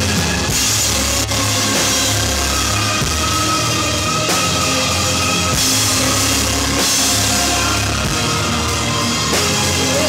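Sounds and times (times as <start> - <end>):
cymbals washing: 0.0 - 10.0
drum kit: 0.0 - 10.0
live band playing instrumental: 0.0 - 10.0.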